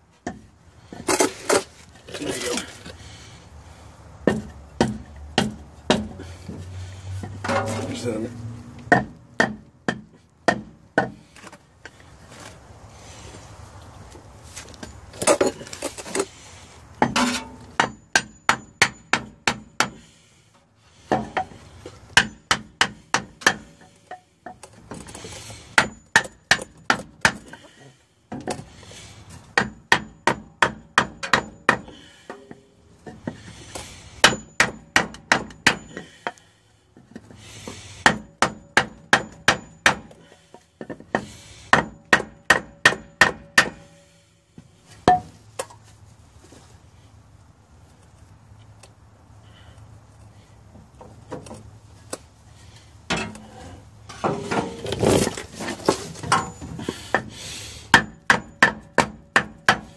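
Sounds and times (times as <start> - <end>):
hammer striking wooden board: 8.9 - 11.2, 58.0 - 59.9.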